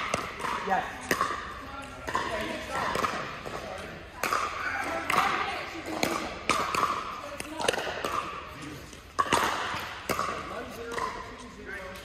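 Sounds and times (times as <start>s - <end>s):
paddle hitting ball: 0.0s - 3.6s, 4.2s - 8.4s, 9.2s - 11.2s.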